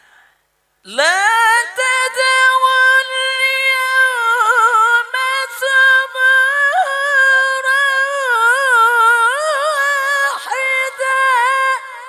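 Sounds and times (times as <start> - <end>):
person reciting melodically: 0.8 - 12.0.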